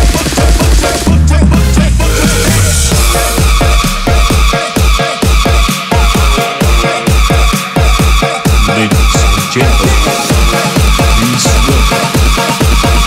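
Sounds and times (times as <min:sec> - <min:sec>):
electronic dance music: 0:00.0 - 0:13.0
heavy sliding bass hits: 0:00.1 - 0:05.0.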